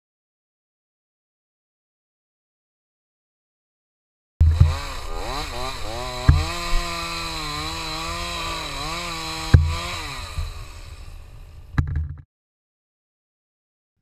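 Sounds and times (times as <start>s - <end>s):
chainsaw revving: 4.4s - 11.8s.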